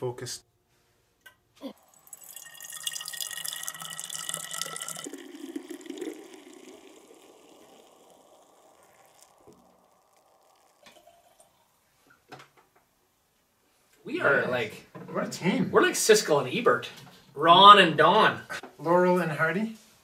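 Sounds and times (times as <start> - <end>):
liquid pouring into a glass bottle: 1.7 - 12.3.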